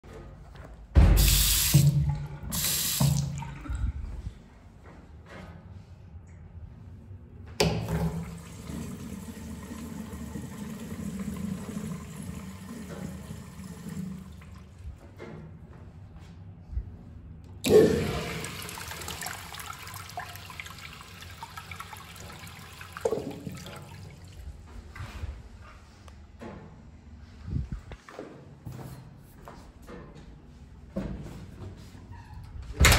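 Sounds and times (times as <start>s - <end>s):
urinal flushing: 1.0s - 4.4s, 7.6s - 15.1s, 17.6s - 25.1s
faucet water running into sink: 1.2s - 3.6s, 7.9s - 14.6s, 17.7s - 24.3s.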